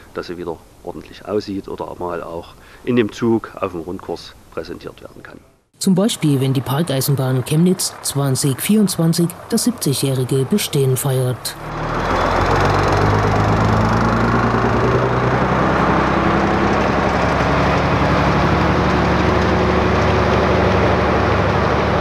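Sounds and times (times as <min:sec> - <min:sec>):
truck diesel engine pulling away: 0:06.1 - 0:22.0.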